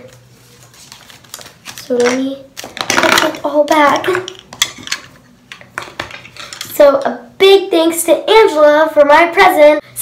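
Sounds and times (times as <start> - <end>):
plastic pens clicking and clattering: 1.7 - 6.7.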